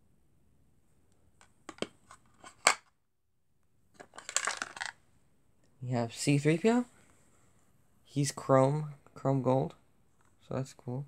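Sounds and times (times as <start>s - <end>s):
plastic figures clicking in a case: 4.0s - 5.0s
plastic figures rattling: 4.0s - 5.0s.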